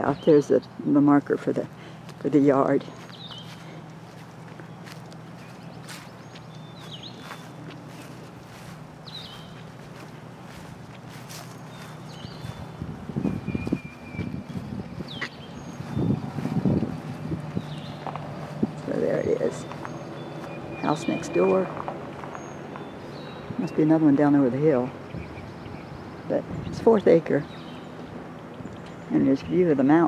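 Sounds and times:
steady low hum: 0.0 - 29.8
small birds chirping: 0.0 - 30.0
footsteps through grass and leaves: 1.3 - 24.8.

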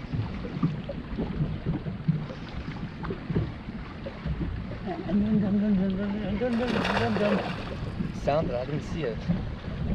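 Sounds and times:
waves lapping against boat hull: 0.0 - 9.9
wind buffeting microphone: 0.0 - 9.9.

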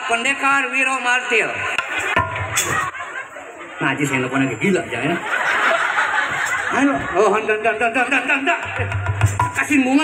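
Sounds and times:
laughter: 0.1 - 7.9.

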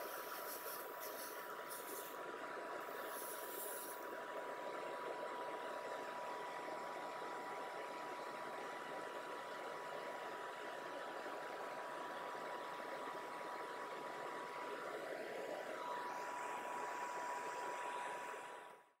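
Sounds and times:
extractor fan whirring: 0.0 - 18.9.

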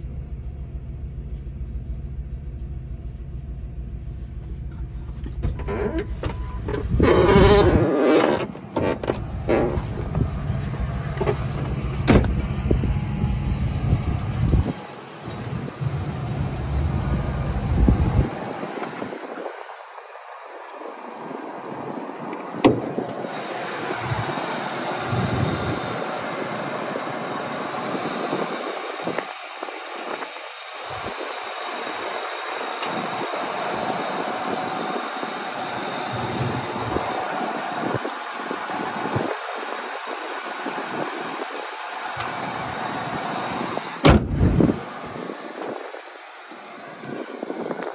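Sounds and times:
engine idling: 0.0 - 7.8, 8.5 - 20.0, 23.2 - 47.9
low rumbling on microphone: 0.0 - 14.8, 15.4 - 18.6.

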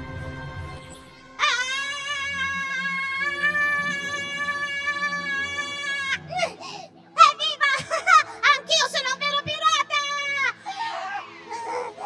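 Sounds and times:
cartoon character high-pitched scream: 1.4 - 6.3.

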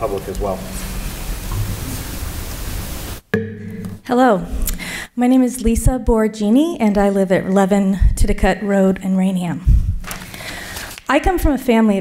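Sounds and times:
sound system hiss: 0.0 - 3.3
electrical hum: 0.0 - 4.8.

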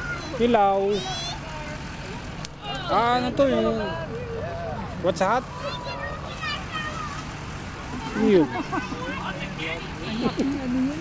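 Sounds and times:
pickup trucks rumbling past: 0.0 - 11.0.

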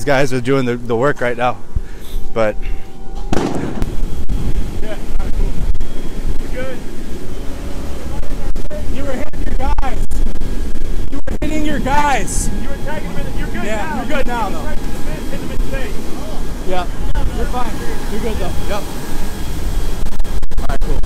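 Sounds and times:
men calling out: 11.2 - 19.0
fire being hosed down rumble: 14.8 - 21.0.

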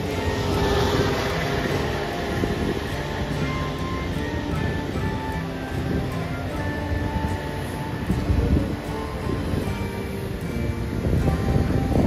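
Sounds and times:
music of slow held notes: 0.0 - 12.0.

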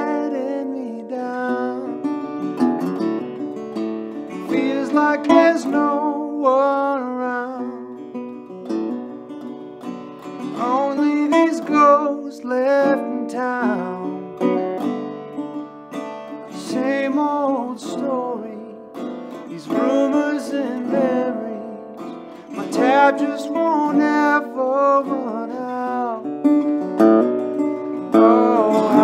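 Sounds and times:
slide guitar melody: 0.0 - 29.0.

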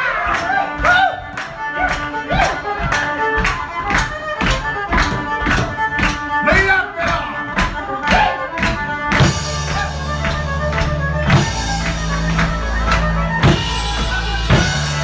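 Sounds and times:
fiddle sliding bowed notes: 0.0 - 15.0
steady drum beat: 4.1 - 15.0
bass guitar: 9.1 - 15.0.

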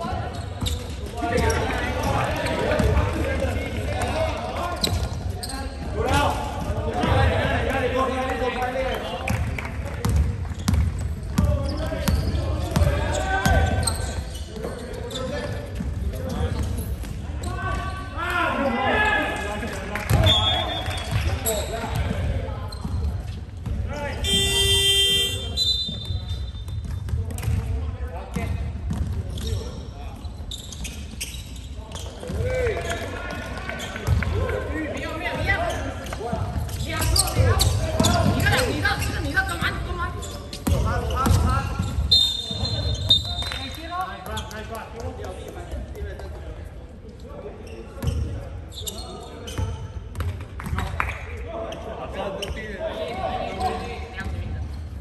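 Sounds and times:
basketball bouncing: 10.0 - 13.8, 28.3 - 29.6
referee's whistle: 20.2 - 21.1, 24.2 - 26.6, 42.1 - 43.6
buzzer: 24.2 - 26.0.

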